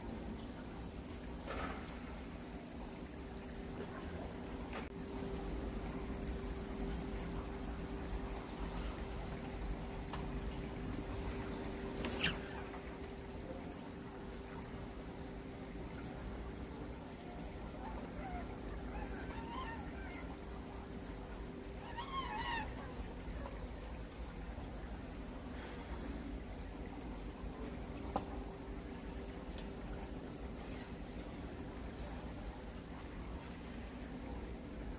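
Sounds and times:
faint high chirps: 0.8s - 3.0s.

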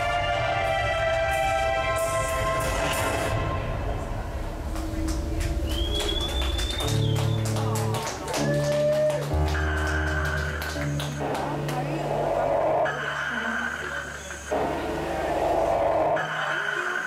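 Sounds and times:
industrial electronic music: 0.0s - 17.0s
deep synthesizer bass line: 9.3s - 16.8s.

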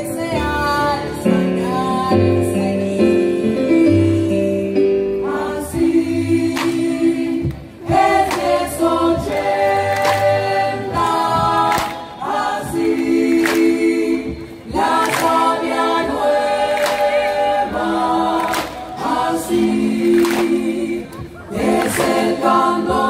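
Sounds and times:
brass and keyboard chords: 0.0s - 23.0s.

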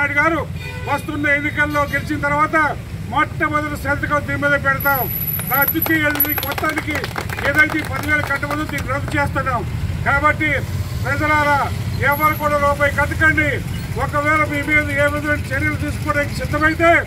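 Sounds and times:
man speaking loudly: 0.0s - 17.0s.

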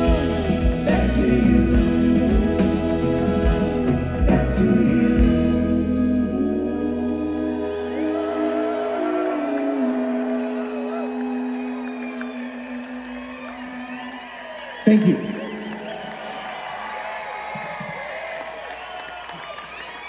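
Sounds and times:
live band holding a chord: 0.0s - 16.0s
crowd cheering and whistling: 6.1s - 20.0s.

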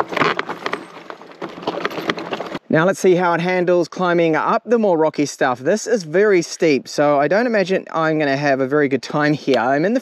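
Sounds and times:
bike tyres crunching over stones: 0.0s - 2.6s.

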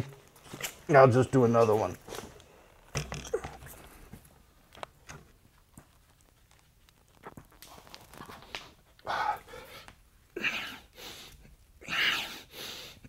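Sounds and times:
man breathing: 8.4s - 13.0s.

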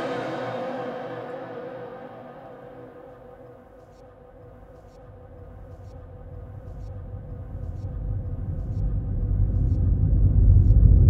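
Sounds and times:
faint steady hum: 0.0s - 11.0s
low rumbling drone: 0.0s - 11.0s.

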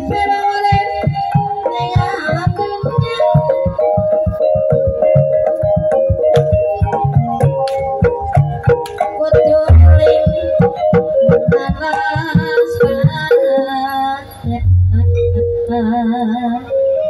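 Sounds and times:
gamelan music: 0.0s - 17.0s
wavering melody line: 0.0s - 17.0s.

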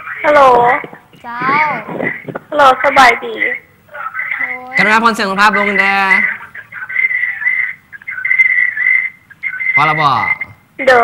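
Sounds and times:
high whistling telephone tone: 8.1s - 10.6s.

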